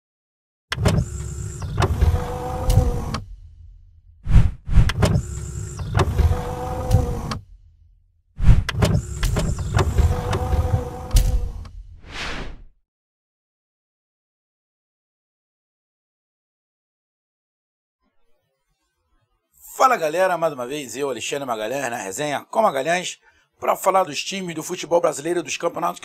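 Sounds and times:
motorised whirring with clicks: 0:00.7 - 0:03.4, 0:04.8 - 0:07.5, 0:08.6 - 0:11.8.

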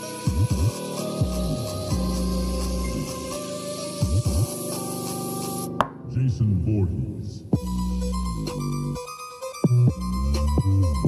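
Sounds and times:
deep bass sweeps from speaker: 0:06.0 - 0:09.0.

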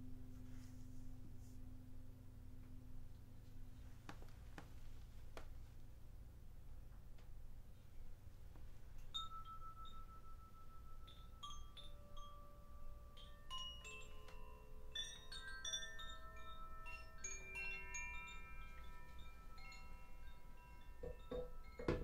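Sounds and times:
hand-held chime ringing: 0:09.0 - 0:22.0
light tinkling clicks: 0:09.0 - 0:22.0.

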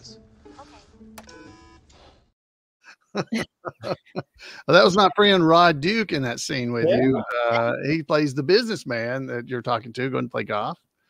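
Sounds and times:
soft background music: 0:00.0 - 0:01.8.

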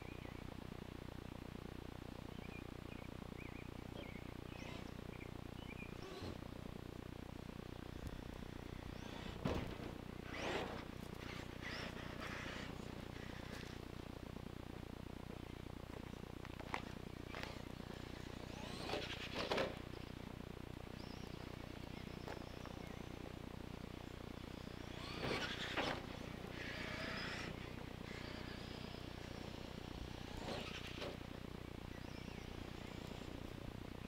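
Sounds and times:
rc truck motor and tyres on dirt: 0:00.0 - 0:34.0.

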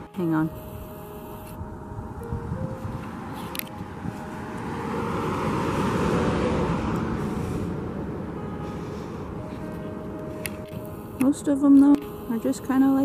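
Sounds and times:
car driving past: 0:02.7 - 0:10.4.

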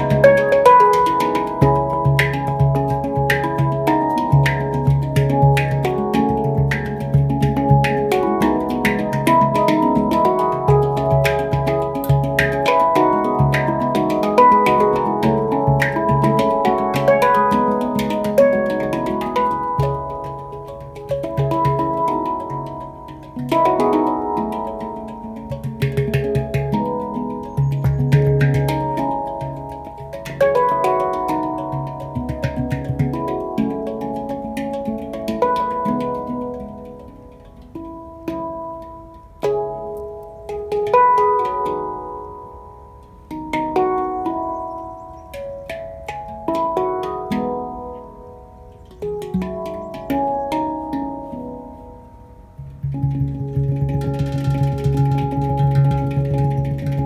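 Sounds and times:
handpans playing: 0:00.0 - 0:57.0.

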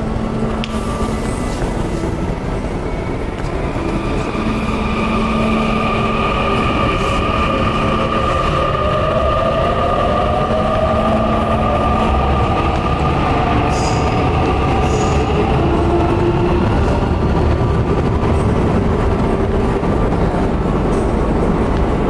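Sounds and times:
metro train rumbling: 0:00.0 - 0:22.0.

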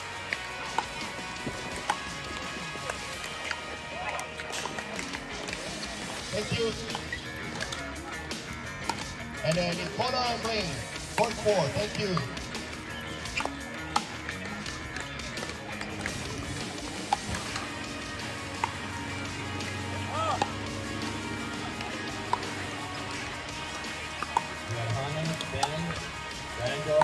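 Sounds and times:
paddles hitting plastic ball: 0:00.3 - 0:03.6, 0:08.4 - 0:18.9, 0:19.6 - 0:21.2, 0:21.8 - 0:27.0.

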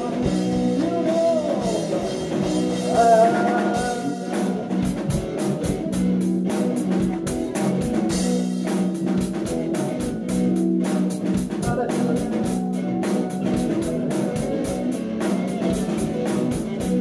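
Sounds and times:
drum kit beat: 0:00.0 - 0:17.0
electric guitars: 0:00.0 - 0:17.0.

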